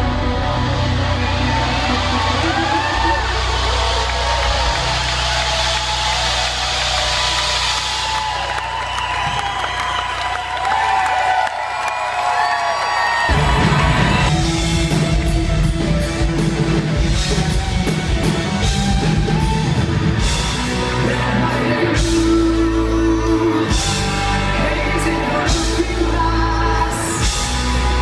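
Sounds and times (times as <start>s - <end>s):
crowd cheering and whistling: 0.0s - 28.0s
rock band playing: 0.0s - 28.0s.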